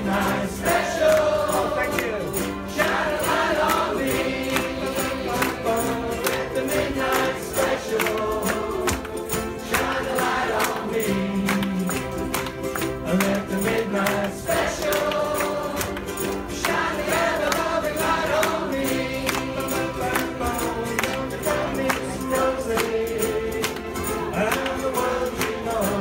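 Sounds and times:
group singing: 0:00.0 - 0:26.0
ukuleles strumming: 0:00.0 - 0:26.0.

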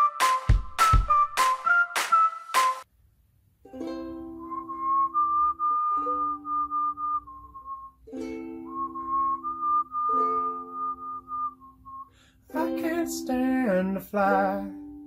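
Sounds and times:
whistled melody: 0:00.0 - 0:02.9, 0:03.8 - 0:13.2
ukulele strummed chords: 0:03.6 - 0:11.7, 0:12.5 - 0:15.0.

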